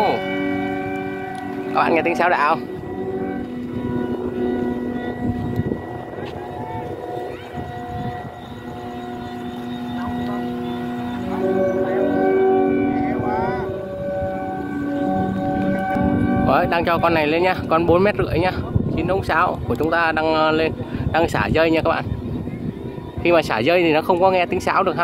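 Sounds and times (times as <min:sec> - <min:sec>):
kite flutes sustained chord: 0:00.0 - 0:25.0.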